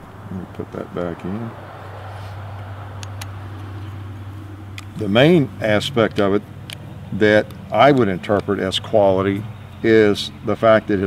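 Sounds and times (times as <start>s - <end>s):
steady low hum: 0.0s - 11.0s
pistol parts clicking together: 6.1s - 8.6s.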